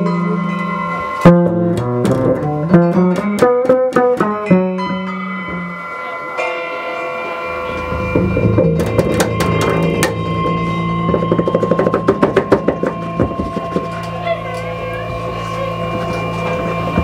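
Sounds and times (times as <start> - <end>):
drum kit: 0.0 - 5.9, 7.7 - 17.0
double bass: 0.0 - 6.3, 7.5 - 17.0.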